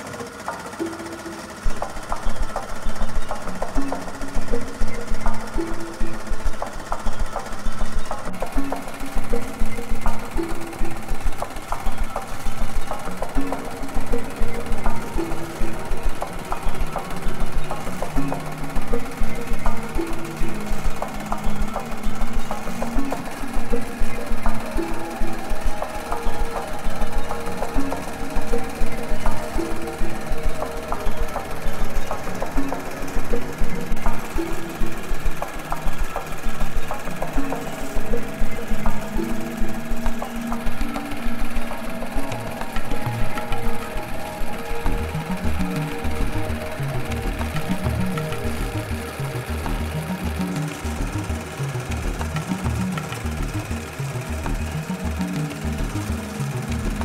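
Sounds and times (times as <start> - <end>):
embroidery machine needle clatter: 0.0 - 57.0
music with stepping melody: 0.0 - 57.0.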